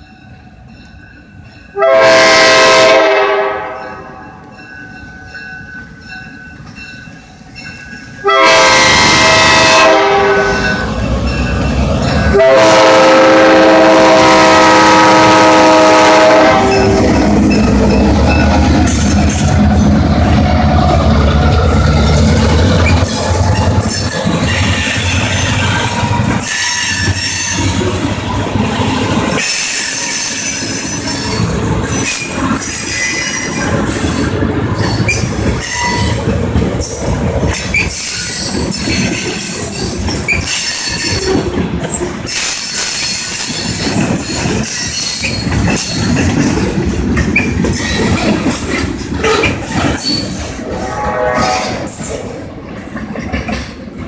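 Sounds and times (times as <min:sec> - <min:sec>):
diesel locomotive engines rumbling: 0:00.0 - 0:54.0
locomotive air horn blast: 0:01.8 - 0:03.8, 0:08.2 - 0:10.8, 0:12.3 - 0:17.1, 0:50.6 - 0:51.9
steel wheels squealing on rails: 0:10.2 - 0:20.2, 0:20.8 - 0:53.7.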